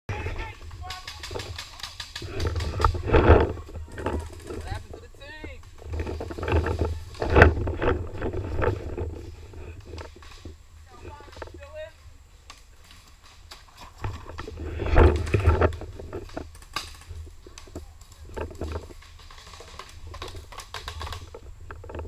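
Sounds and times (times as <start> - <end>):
distant voices calling out: 0.1 - 12.4.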